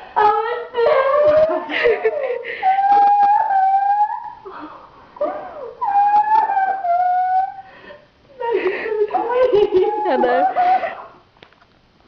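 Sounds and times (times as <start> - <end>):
person crying in wailing sobs: 0.6 - 3.0, 8.3 - 11.0.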